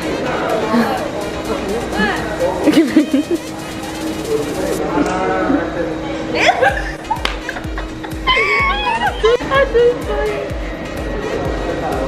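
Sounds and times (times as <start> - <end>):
people chattering: 0.0 - 12.0
people laughing: 2.0 - 3.7, 6.2 - 10.4.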